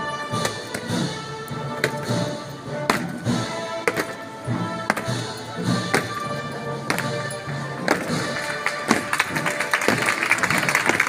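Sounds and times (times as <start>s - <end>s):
music: 0.0s - 11.0s
crowd clapping: 7.9s - 11.0s.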